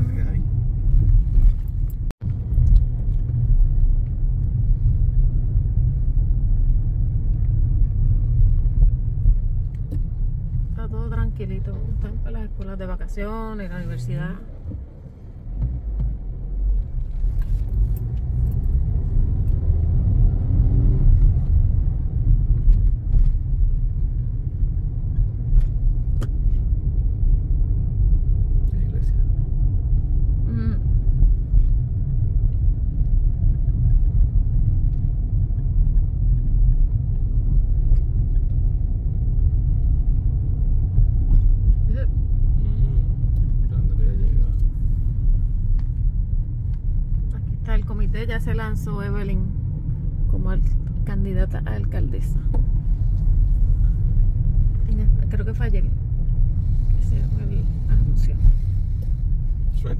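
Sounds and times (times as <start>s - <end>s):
car engine: 0.0s - 59.9s
road noise: 0.0s - 59.9s.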